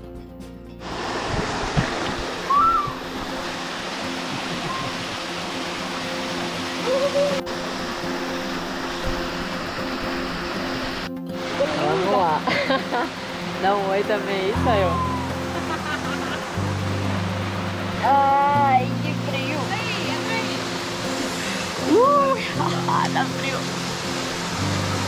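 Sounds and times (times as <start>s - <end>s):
background music: 0.0s - 25.0s
waterfall pouring into pool: 0.8s - 25.0s.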